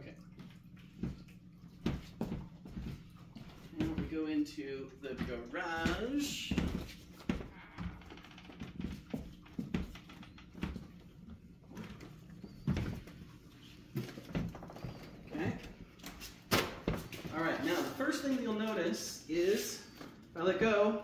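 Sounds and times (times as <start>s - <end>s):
footsteps: 1.0s - 4.3s, 5.0s - 11.0s.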